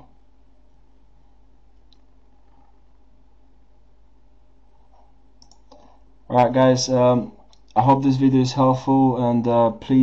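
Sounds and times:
low electrical hum: 0.0 - 10.0
computer mouse clicks: 4.9 - 5.9.

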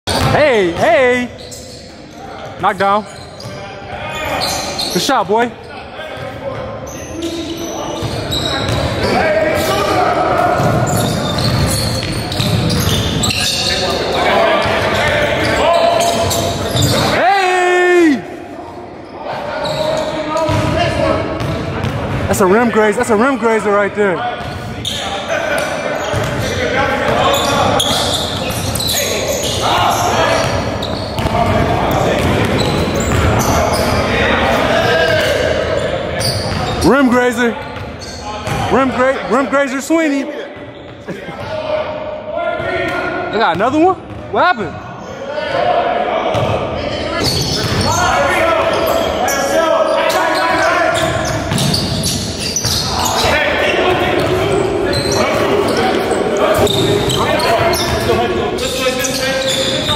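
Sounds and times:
players' voices: 0.1 - 59.9
basketballs bouncing on hardwood: 31.2 - 33.4.

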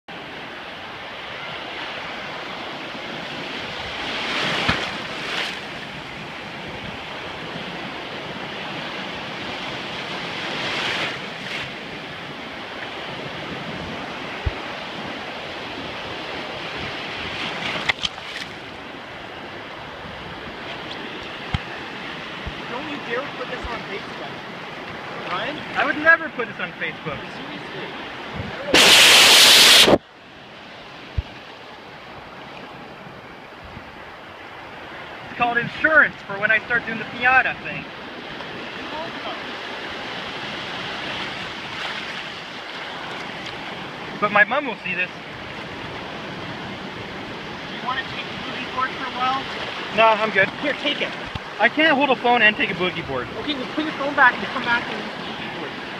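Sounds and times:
ocean surf washing: 0.1 - 55.9.

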